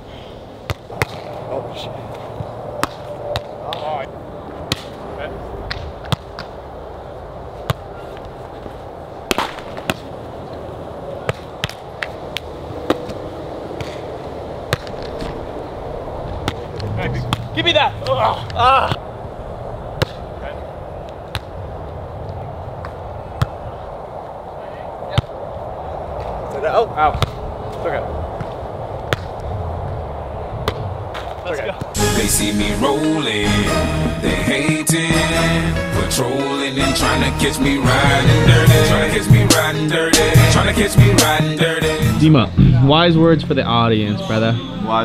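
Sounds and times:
voices: 1.0s - 5.7s, 16.6s - 19.1s, 31.4s - 45.0s.

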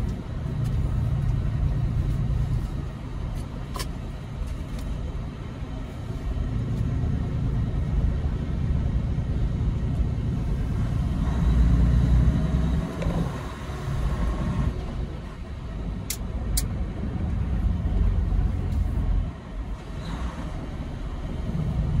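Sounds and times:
diesel truck engine rumbling: 0.0s - 22.0s.

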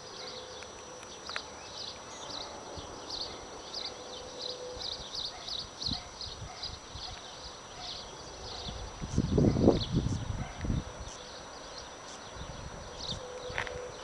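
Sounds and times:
faint outdoor background sound: 0.0s - 14.0s.

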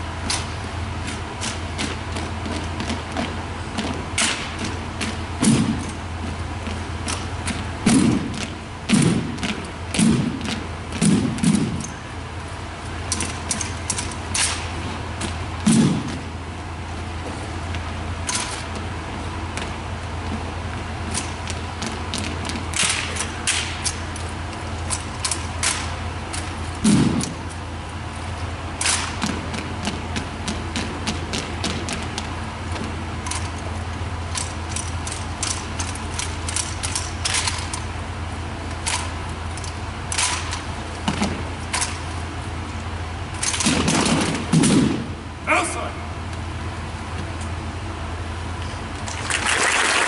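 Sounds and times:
steady low hum: 0.0s - 50.0s
rifles and boots striking floor: 1.1s - 12.0s, 13.1s - 16.3s
heavy low thump: 14.8s - 16.3s.

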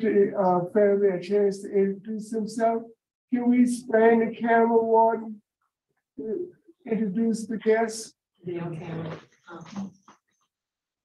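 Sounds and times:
person speaking through video call: 0.0s - 5.4s, 6.2s - 10.0s.

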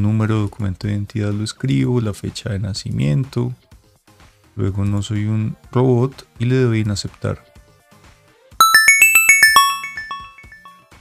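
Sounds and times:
bell-like chime jingle: 8.6s - 10.8s.

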